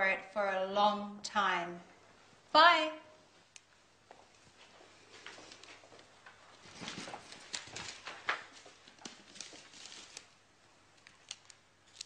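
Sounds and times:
rustling of things handled: 3.3s - 12.0s.

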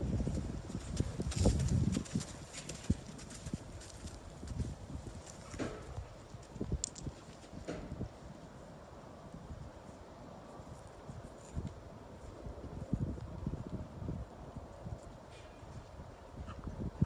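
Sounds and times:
horse hoofbeats on dirt: 0.2s - 6.6s.

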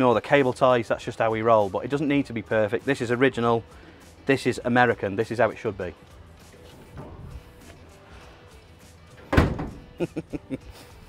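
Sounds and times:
faint background music: 0.0s - 11.0s
truck panel slamming: 6.8s - 7.8s, 9.2s - 10.1s.

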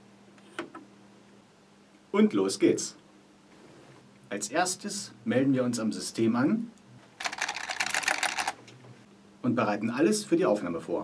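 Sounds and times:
rapid typing on keyboard: 7.2s - 8.6s.

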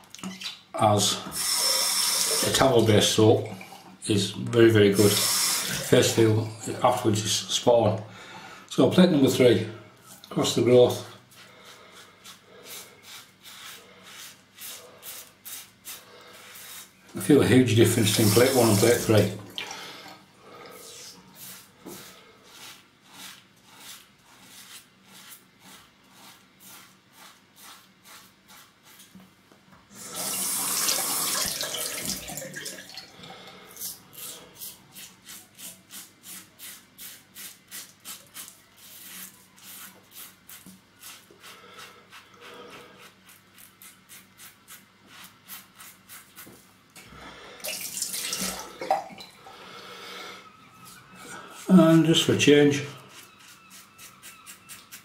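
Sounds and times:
tap running water: 30.0s - 33.1s, 47.6s - 49.4s
razor scraping through stubble: 51.6s - 55.0s.

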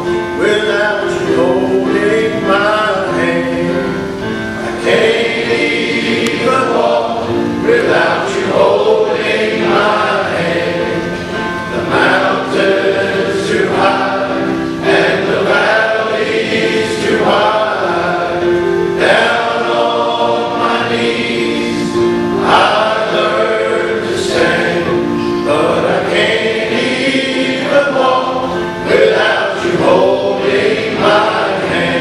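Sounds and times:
men's choir singing in harmony: 0.0s - 32.0s.

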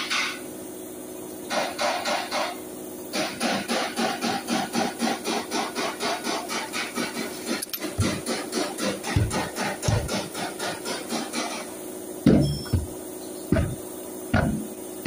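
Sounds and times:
hand ratchet clicking: 7.6s - 8.3s.

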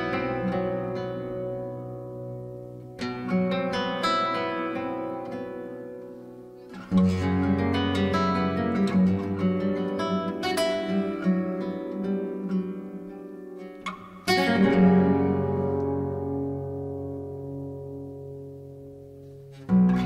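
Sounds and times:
flamenco acoustic guitar music: 0.0s - 20.0s.

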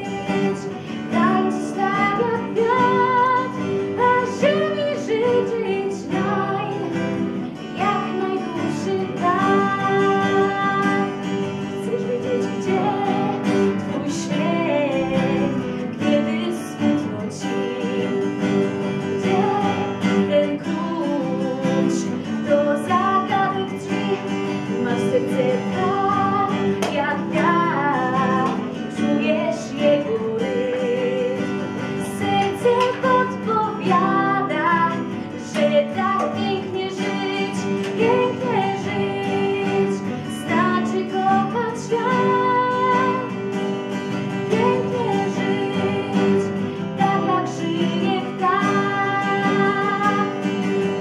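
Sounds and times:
acoustic guitar chords: 0.0s - 51.0s
woman singing: 0.0s - 51.0s.

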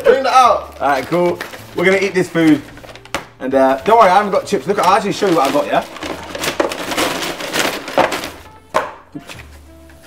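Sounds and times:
paper bag rustling: 0.0s - 8.6s.

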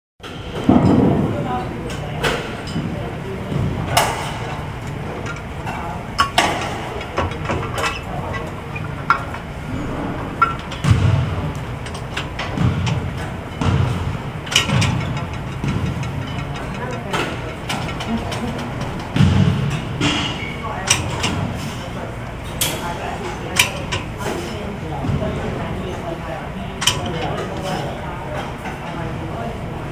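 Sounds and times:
indistinct voices: 0.5s - 29.9s
sharp clicks and knocks: 3.5s - 21.6s, 26.8s - 28.8s.

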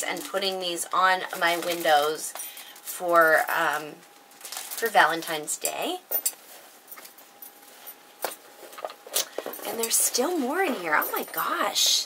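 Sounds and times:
metal bangles clinking: 6.1s - 11.9s.

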